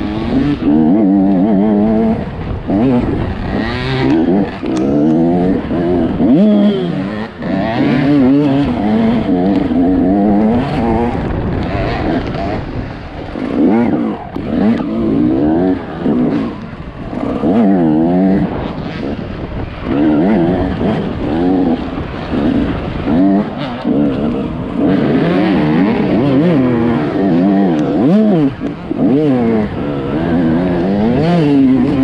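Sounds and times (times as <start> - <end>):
dirt bike engine revving: 0.0 - 32.0.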